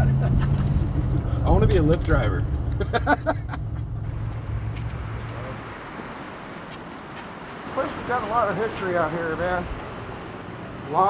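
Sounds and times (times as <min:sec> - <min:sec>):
person laughing: 0:00.0 - 0:01.3, 0:02.7 - 0:04.0
car engine and road rumble: 0:00.0 - 0:11.0.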